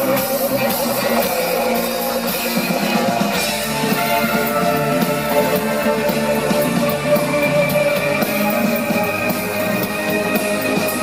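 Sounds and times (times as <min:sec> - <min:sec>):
live synth-pop band playing: 0:00.0 - 0:11.0.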